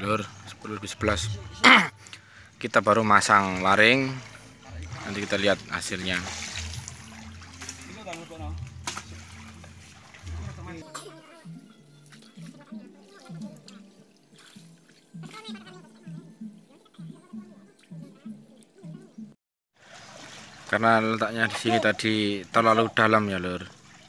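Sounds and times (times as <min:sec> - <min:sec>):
water sloshing: 0:00.0 - 0:18.8, 0:19.8 - 0:24.0.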